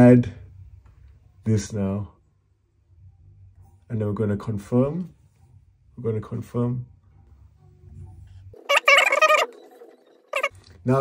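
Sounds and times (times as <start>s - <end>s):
high-pitched wavering cry: 8.6s - 9.6s.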